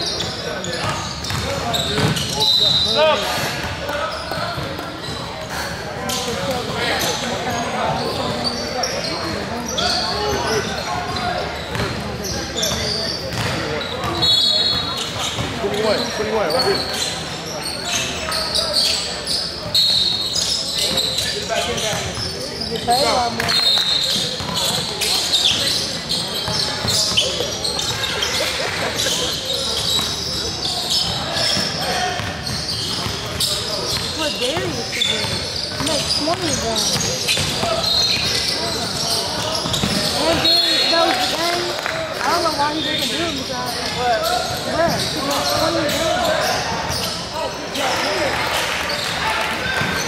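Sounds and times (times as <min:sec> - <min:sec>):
sneakers squeaking: 0:00.0 - 0:50.0
basketball bouncing on wooden court: 0:00.8 - 0:02.3, 0:11.1 - 0:12.0, 0:12.7 - 0:14.2, 0:31.6 - 0:40.4.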